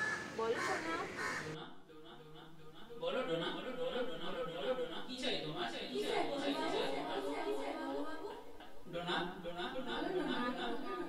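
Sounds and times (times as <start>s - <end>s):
harsh bird calls: 0.0s - 1.6s.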